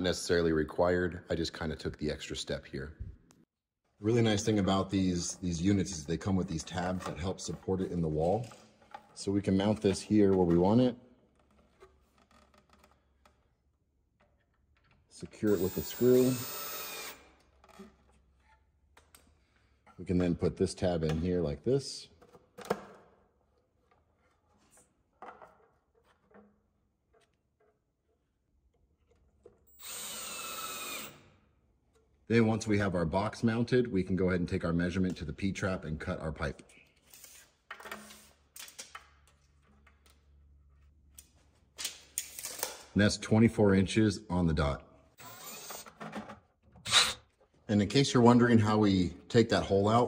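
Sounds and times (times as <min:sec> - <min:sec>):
cordless drill driving a screw: 0:15.5 - 0:17.3, 0:29.7 - 0:31.2, 0:45.2 - 0:45.9, 0:46.9 - 0:47.2.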